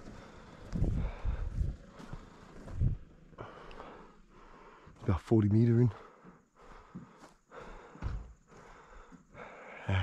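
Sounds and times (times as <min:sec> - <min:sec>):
man breathing hard: 0:00.0 - 0:05.0, 0:05.8 - 0:10.0.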